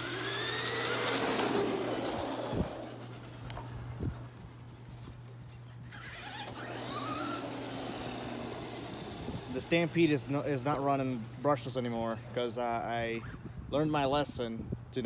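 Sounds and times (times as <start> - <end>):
rc truck motors whining: 0.0 - 4.6, 5.9 - 13.4.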